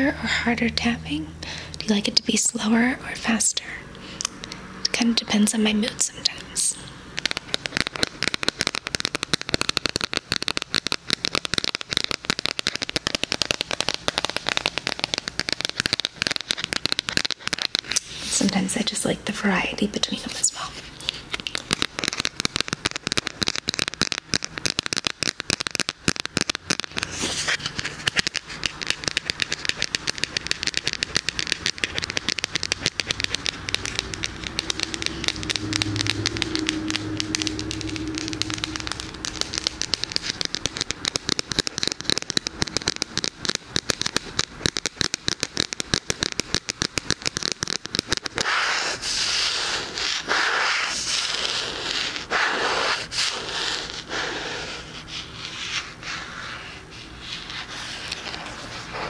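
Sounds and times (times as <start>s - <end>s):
scratching and rubbing plastic: 5.0s - 59.0s
fingernails tapping plastic: 27.9s - 48.4s.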